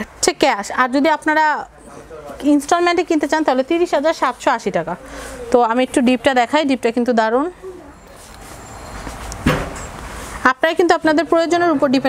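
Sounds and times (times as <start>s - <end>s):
sharp knock: 9.4s - 9.8s.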